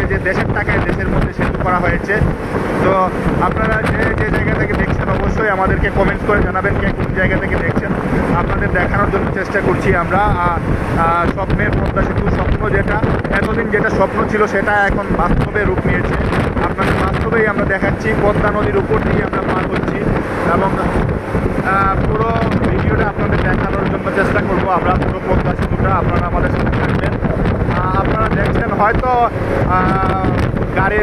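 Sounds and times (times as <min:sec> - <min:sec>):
person talking: 0:00.0 - 0:21.0, 0:21.6 - 0:31.0
person's voice: 0:00.0 - 0:21.0, 0:21.6 - 0:31.0
vehicle road noise: 0:00.0 - 0:31.0
wind buffeting microphone: 0:00.0 - 0:31.0.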